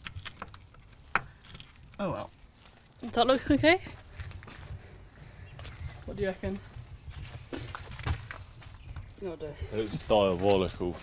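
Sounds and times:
wind rumble on microphone: 3.9 - 10.1.

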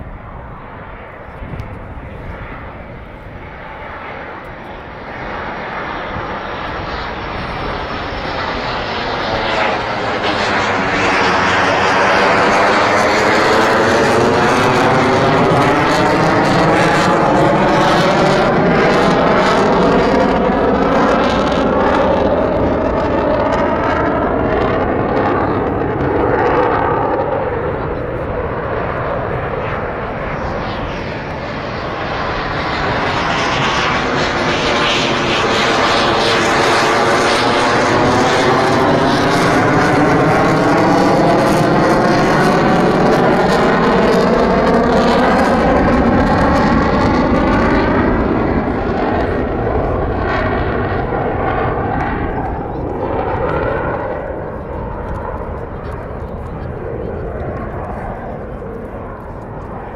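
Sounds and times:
fighter jet passing overhead: 0.0 - 59.9.

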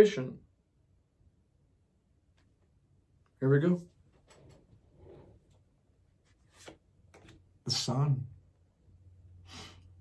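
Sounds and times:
cards rustling: 6.2 - 7.4.

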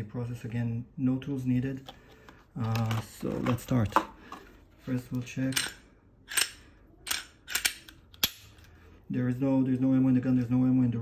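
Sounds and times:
pistol slide racking clacks: 5.5 - 8.6.

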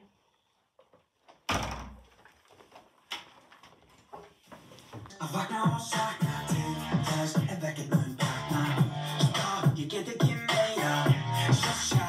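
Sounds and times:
door banging shut: 1.5 - 2.0.

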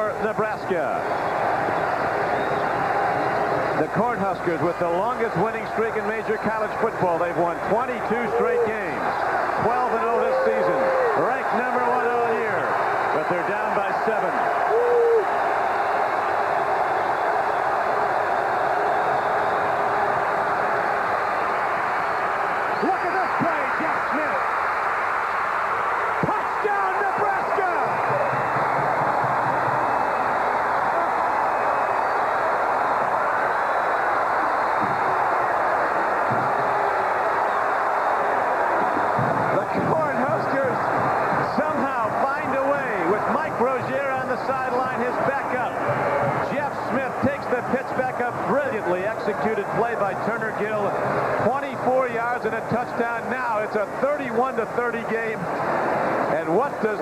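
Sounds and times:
stadium crowd cheering and shouting: 0.0 - 57.0.

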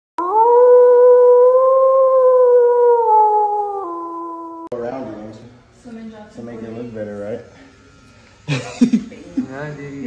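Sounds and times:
wolf howling: 0.2 - 4.8.

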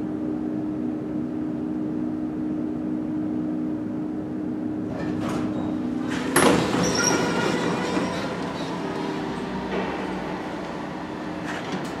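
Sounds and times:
elevator hum: 0.0 - 12.0
elevator clatter: 4.8 - 12.0
elevator doors sliding open: 4.8 - 12.0.

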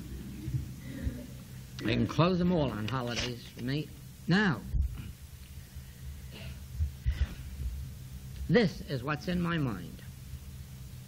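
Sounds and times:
soft low thumps: 0.0 - 1.4, 4.7 - 5.2, 6.6 - 8.0
low electrical hum: 0.0 - 11.0.

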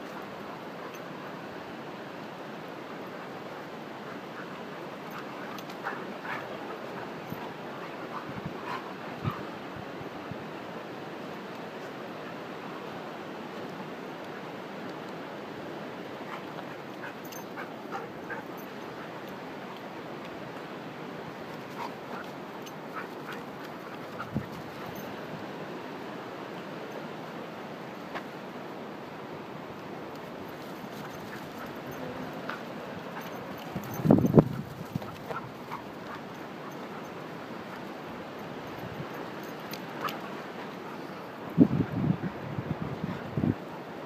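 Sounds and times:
dogs yelping: 33.2 - 37.1.

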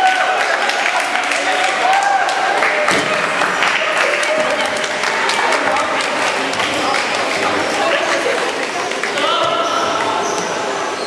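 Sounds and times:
overlapping voices in a hall: 0.0 - 11.0.

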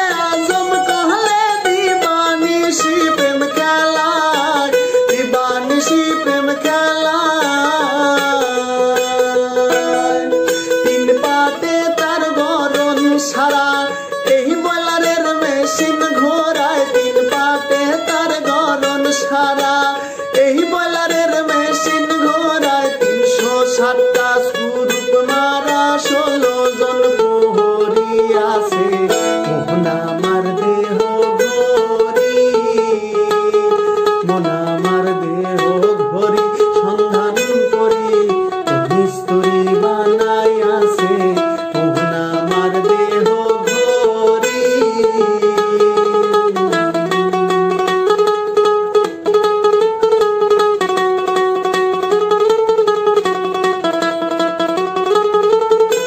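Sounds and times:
man singing: 0.0 - 49.1
acoustic mandolin folk melody: 0.0 - 56.0.

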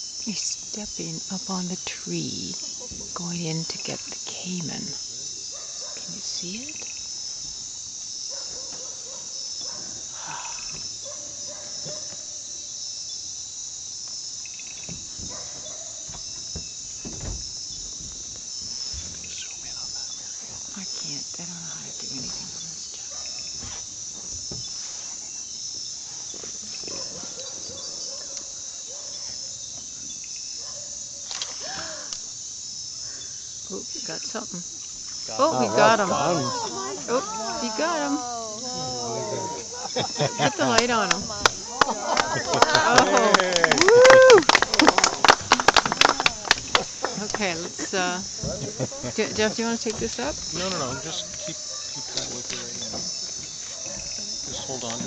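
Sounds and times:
insects shrilling: 0.0 - 55.0
pulsing insect chirp: 0.0 - 55.0.

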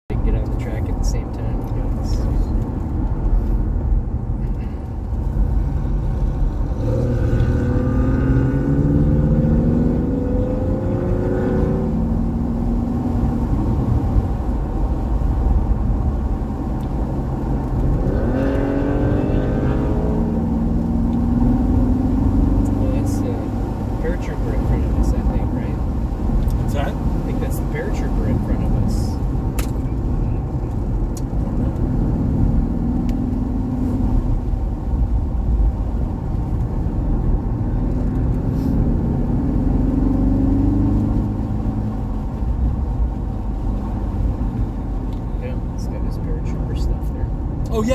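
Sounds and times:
sports car engine from cabin: 0.1 - 47.9.

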